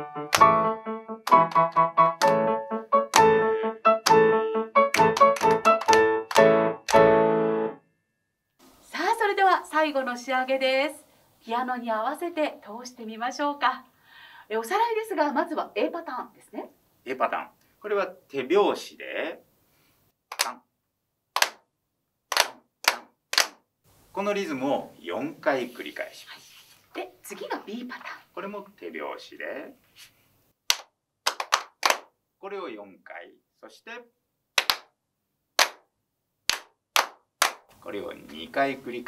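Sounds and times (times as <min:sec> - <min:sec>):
people clapping in unison: 0:00.3 - 0:00.6, 0:01.2 - 0:07.1, 0:20.3 - 0:20.6, 0:21.4 - 0:21.6, 0:22.3 - 0:23.6, 0:30.7 - 0:32.1, 0:34.6 - 0:34.9, 0:35.6 - 0:35.9, 0:36.5 - 0:37.7.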